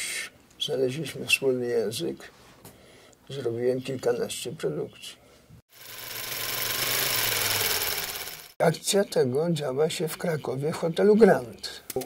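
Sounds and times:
small machine rattling: 5.7s - 8.6s.

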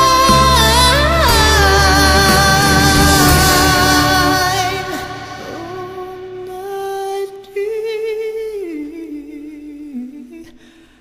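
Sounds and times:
man singing sustained note: 0.0s - 8.4s.

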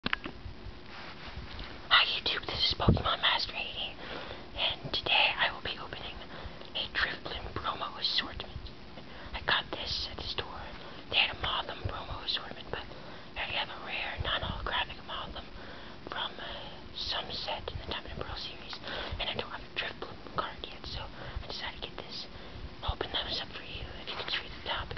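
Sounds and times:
person whispering: 1.9s - 4.0s, 4.6s - 8.6s, 9.4s - 15.5s, 16.1s - 24.9s.

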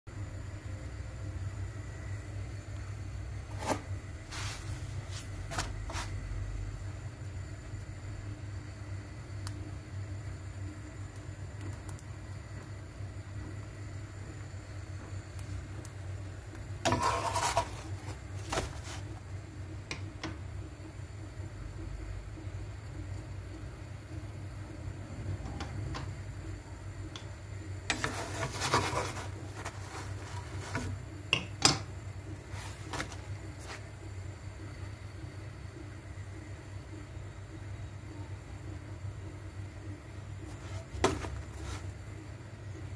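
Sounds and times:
steady low hum: 0.1s - 42.9s
dough scraping against a pan: 3.5s - 6.2s, 16.8s - 19.2s, 27.9s - 31.0s, 40.5s - 41.9s.

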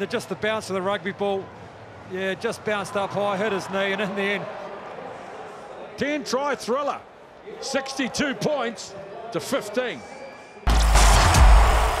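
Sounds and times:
bass-heavy music sting: 10.7s - 12.0s.

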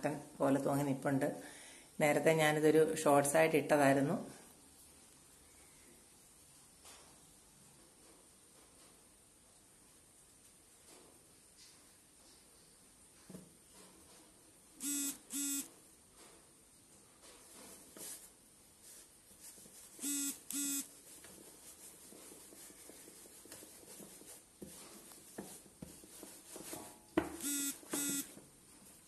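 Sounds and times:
electronic buzzer beeps: 14.8s - 15.7s, 20.0s - 20.9s, 27.4s - 28.4s.

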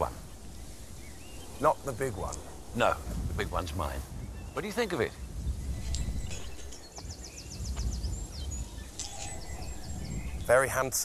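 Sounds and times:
songbird trilling: 0.0s - 2.8s, 4.1s - 10.7s.

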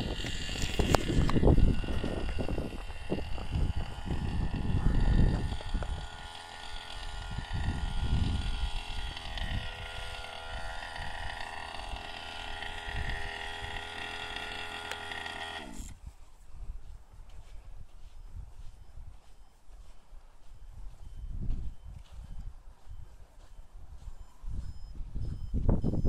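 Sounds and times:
wind rumbling on microphone: 0.0s - 14.7s, 15.8s - 26.0s
small two-stroke engine buzzing: 0.0s - 16.0s.

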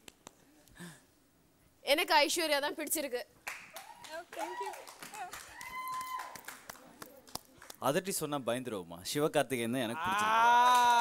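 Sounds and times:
audience applauding: 3.5s - 7.8s.

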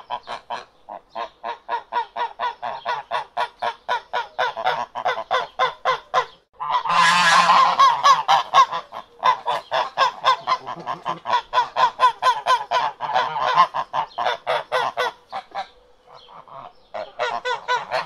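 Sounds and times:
ducks quacking: 0.0s - 18.0s.

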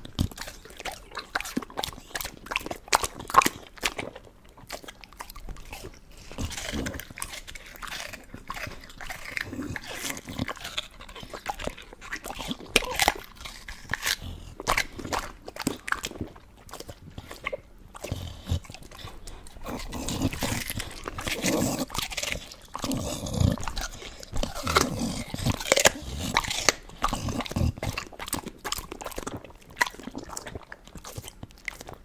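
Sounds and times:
dog chewing crisp food: 0.0s - 32.0s
wet slobbery mouth sounds: 0.0s - 32.0s.

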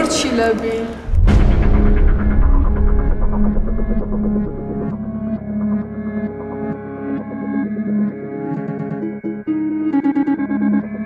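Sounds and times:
deep throbbing bass: 1.0s - 6.0s.

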